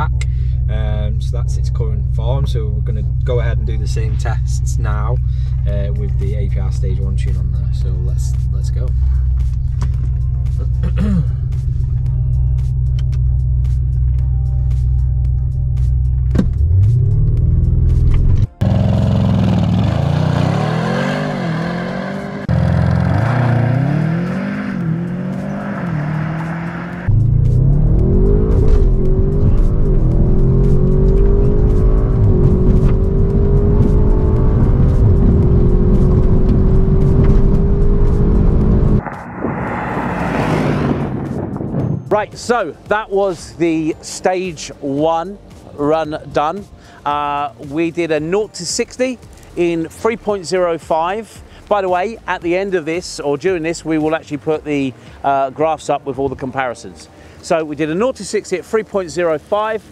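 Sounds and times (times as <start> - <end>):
car engine revving through gears: 16.3 - 42.0.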